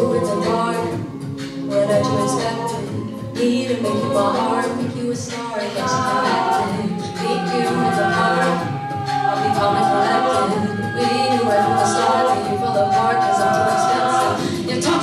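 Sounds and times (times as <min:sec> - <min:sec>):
a cappella ensemble singing: 0:00.0 - 0:15.0.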